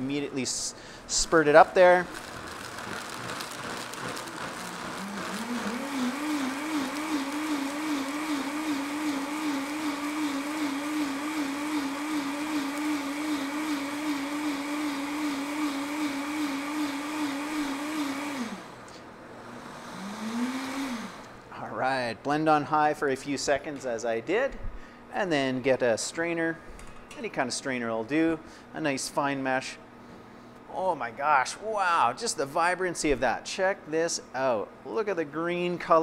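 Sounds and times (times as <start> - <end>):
blender motor running: 2.1 - 21.4.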